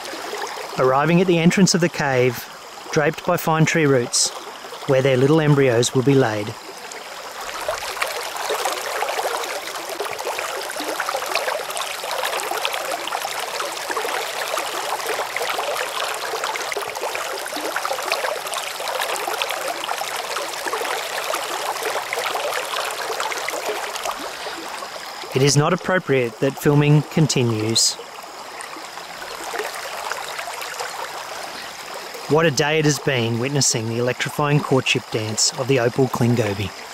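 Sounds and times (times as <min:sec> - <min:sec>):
stream water trickling into pool: 0:00.0 - 0:36.9.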